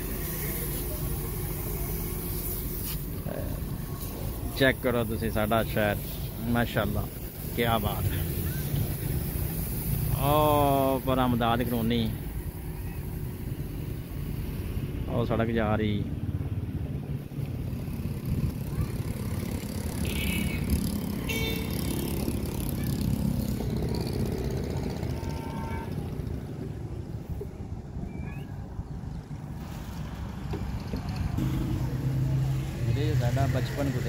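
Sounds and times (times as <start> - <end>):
road noise: 0.0 - 34.0
vehicle engine rumble: 0.0 - 34.0.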